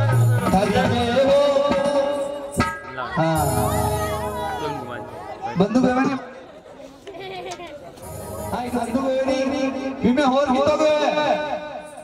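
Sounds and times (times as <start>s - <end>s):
indistinct chatter: 0.0s - 12.0s.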